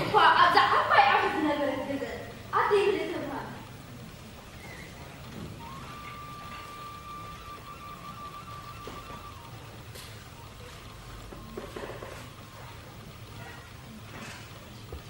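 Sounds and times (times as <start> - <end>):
faint background hum: 0.0 - 15.0.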